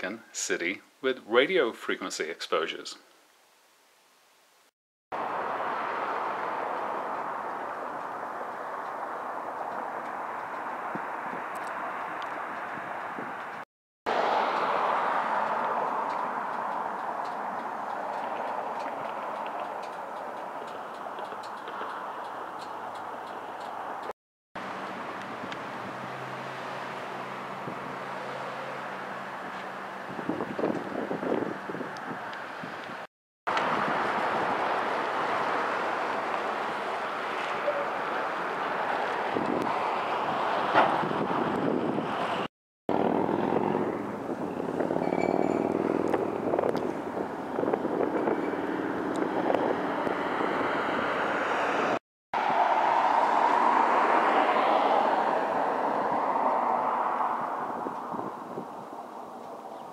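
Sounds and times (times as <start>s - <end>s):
traffic going by: 5.1s - 59.9s.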